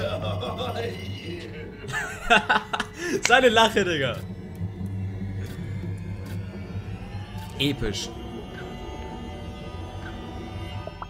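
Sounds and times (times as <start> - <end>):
deep bass drone music: 0.0 - 11.0.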